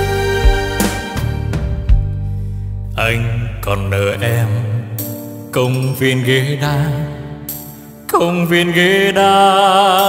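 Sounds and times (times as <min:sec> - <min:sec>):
band playing instrumental: 0:00.0 - 0:02.4
lead melody with wide vibrato: 0:00.0 - 0:03.6.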